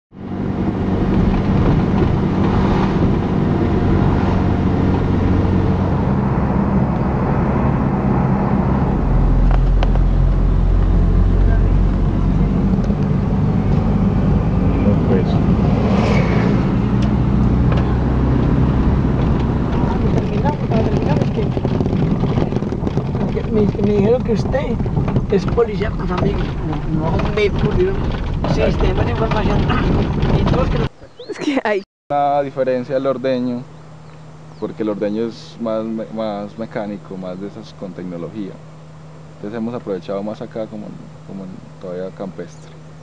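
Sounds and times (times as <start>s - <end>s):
car engine and road noise: 0.1s - 43.0s.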